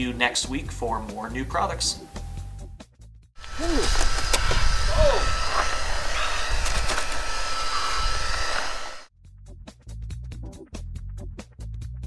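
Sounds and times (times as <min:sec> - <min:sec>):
music: 0:00.0 - 0:03.4, 0:09.1 - 0:12.0
wind rumble on microphone: 0:03.4 - 0:08.8
thin steady whine: 0:03.4 - 0:09.1.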